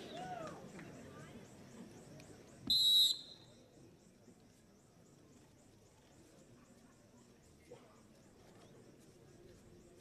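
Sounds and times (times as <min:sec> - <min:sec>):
referee's whistle blast: 0:02.7 - 0:03.5.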